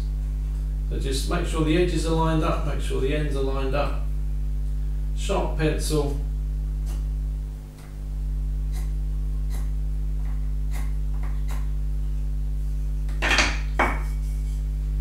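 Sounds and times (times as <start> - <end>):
wooden pieces knocking: 13.1 - 14.1.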